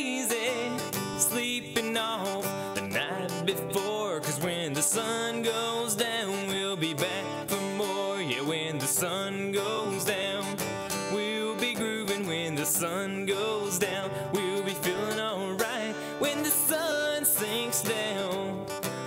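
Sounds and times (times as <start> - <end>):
acoustic guitar strumming: 0.0 - 19.0
man singing: 0.0 - 19.0.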